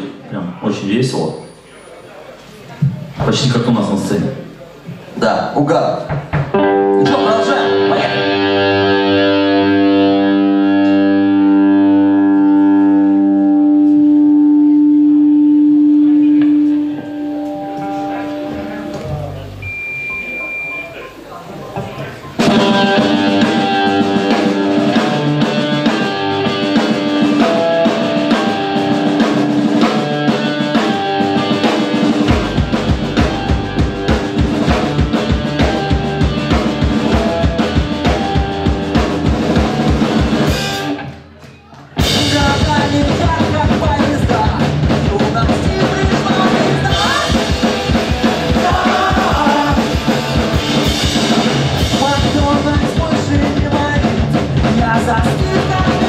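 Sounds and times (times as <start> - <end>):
bass guitar: 6.1 - 20.7, 21.8 - 56.0
electric guitars: 6.1 - 56.0.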